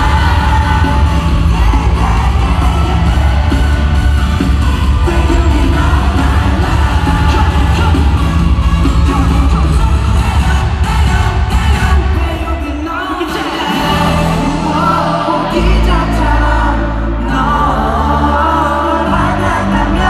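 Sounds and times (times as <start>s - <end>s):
heavy bass beat: 0.0s - 16.7s
male group vocals: 0.0s - 20.0s.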